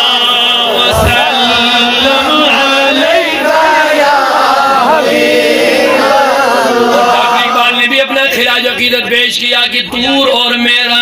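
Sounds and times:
man chanting: 0.0 - 3.4, 6.9 - 8.8.

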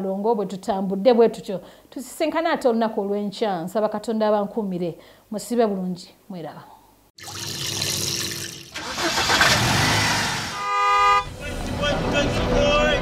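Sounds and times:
car engine and tyre noise: 8.8 - 13.0
car horn honk: 10.3 - 13.0
ident music: 10.7 - 13.0.

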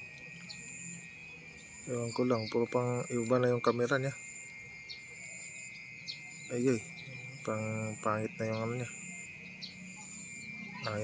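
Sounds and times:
insects trilling: 0.0 - 11.0
thin high insect tone: 0.0 - 11.0.

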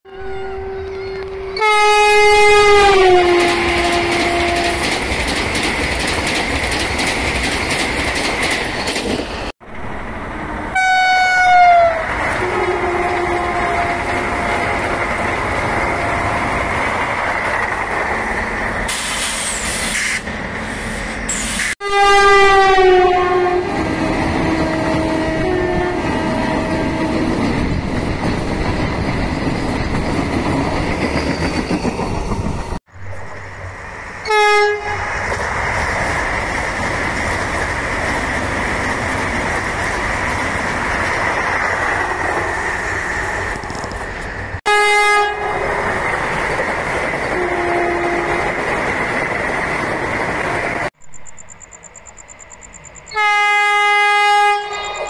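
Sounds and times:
train horn blasts: 0.1 - 4.9, 10.7 - 16.5, 21.8 - 27.4, 34.2 - 35.1, 44.6 - 45.8, 47.3 - 48.5, 53.1 - 55.0
train wheels rushing and rattling: 2.5 - 10.7, 11.9 - 21.8, 23.6 - 34.2, 35.0 - 44.6, 45.3 - 51.0.

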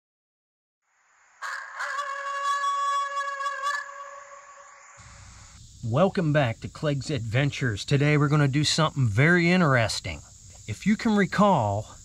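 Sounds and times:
hiss: 4.6 - 6.8.

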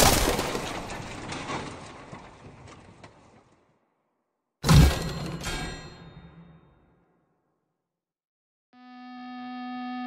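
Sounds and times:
clicks and clatter: 0.0 - 3.7
heavy crash: 4.6 - 6.8.

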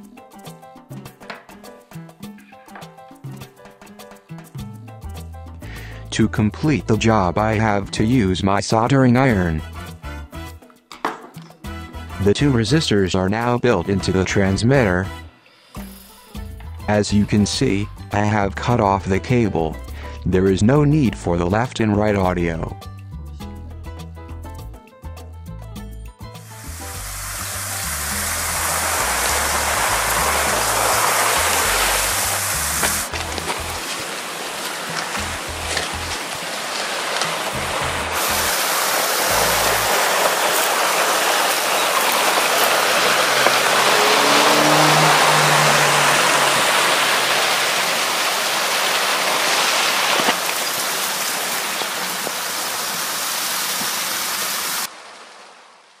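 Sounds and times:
background music with bass line: 0.0 - 10.8, 11.5 - 13.0, 16.3 - 34.0, 35.1 - 36.2
running water: 26.4 - 55.9.

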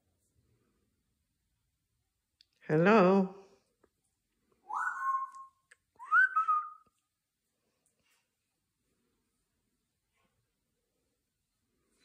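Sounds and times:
parrot whistling: 4.7 - 6.8.

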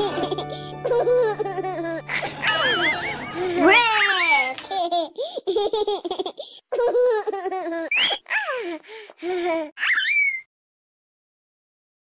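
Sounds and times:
baby laughing: 0.0 - 8.6.

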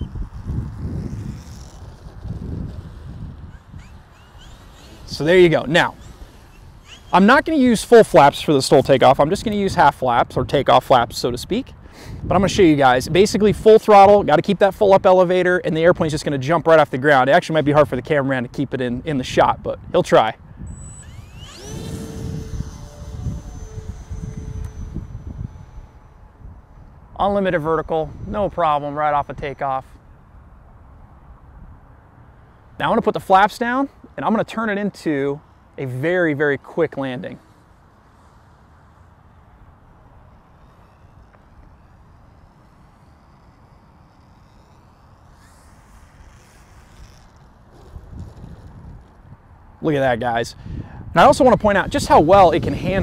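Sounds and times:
electric motor propeller whine: 0.0 - 9.9, 20.5 - 33.5, 34.4 - 53.0
wind rumbling on microphone: 0.0 - 15.2, 18.8 - 32.9, 39.6 - 53.0.

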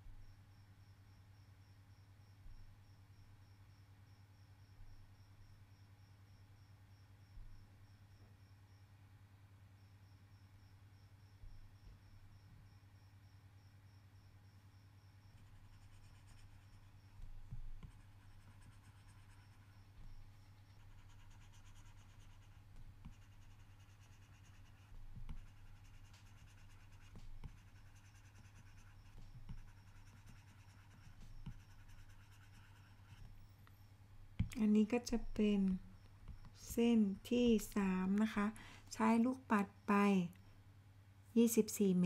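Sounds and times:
steady low hum: 0.0 - 41.4
stylus scratching on tablet screen: 15.3 - 33.4.

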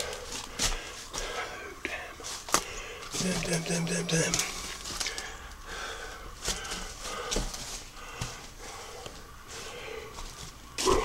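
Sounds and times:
person breathing: 0.0 - 3.2, 4.6 - 10.3
footsteps on debris: 2.2 - 5.6, 6.3 - 8.6.

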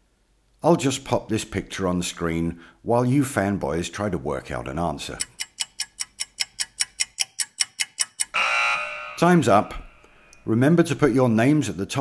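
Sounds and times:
clock ticking: 5.1 - 8.4.

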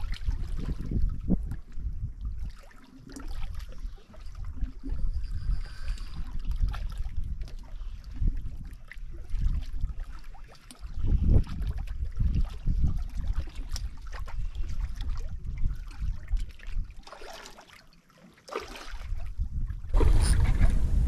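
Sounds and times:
wind buffeting microphone: 0.0 - 2.6, 3.4 - 17.0, 19.0 - 21.0
small waves lapping on rocks: 0.0 - 21.0.

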